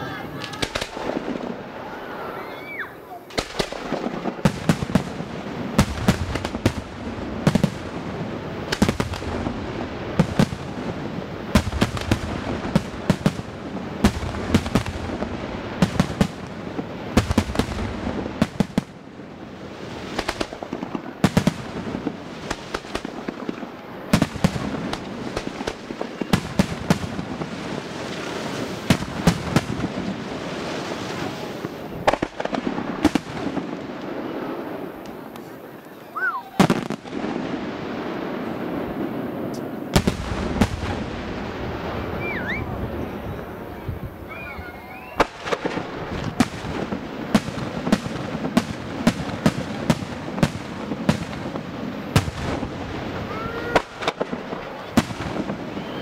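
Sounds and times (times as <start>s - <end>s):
crackle and rumble of fireworks: 0.0s - 56.0s.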